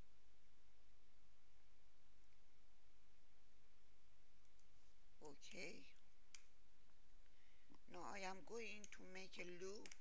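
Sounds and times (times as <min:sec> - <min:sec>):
low room hum: 0:00.0 - 0:10.0
computer mouse click: 0:09.7 - 0:10.0.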